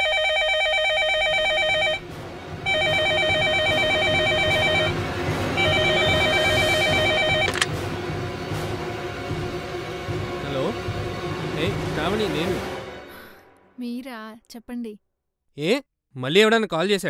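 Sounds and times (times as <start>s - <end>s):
telephone electronic ringing: 0.0s - 2.0s, 2.7s - 5.0s, 5.6s - 7.7s.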